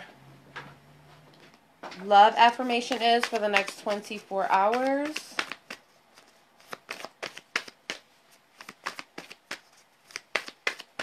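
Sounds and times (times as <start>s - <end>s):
cards being shuffled: 1.9s - 11.0s.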